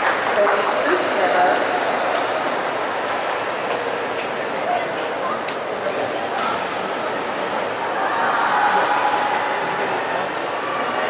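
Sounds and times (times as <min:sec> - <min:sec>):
spectators applauding: 0:00.0 - 0:02.4.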